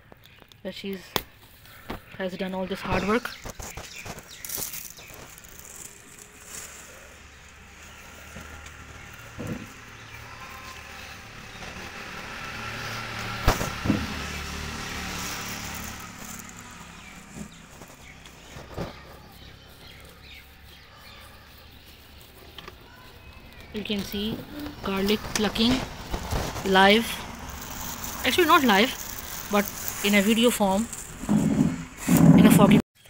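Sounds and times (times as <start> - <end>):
plastic bag rustling: 2.7 - 22.2, 22.8 - 32.4.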